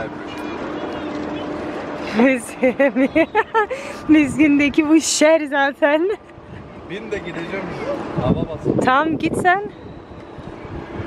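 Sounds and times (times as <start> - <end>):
woman laughing: 2.1 - 4.2.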